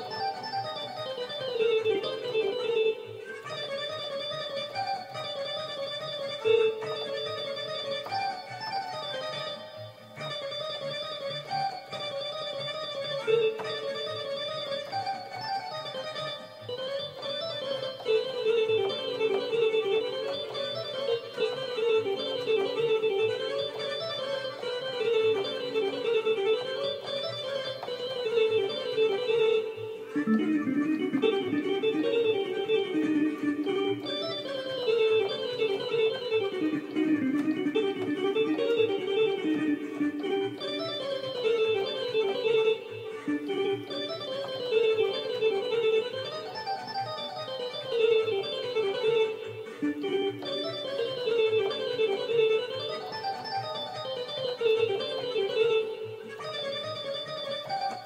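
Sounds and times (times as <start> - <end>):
electronic keyboard folk-dance tune: 0.0 - 58.0.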